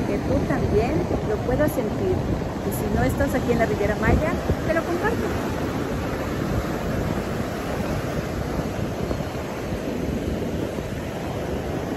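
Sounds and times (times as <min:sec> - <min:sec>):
sea surf breaking on beach: 0:00.0 - 0:11.9
wind rumbling on microphone: 0:00.0 - 0:11.9.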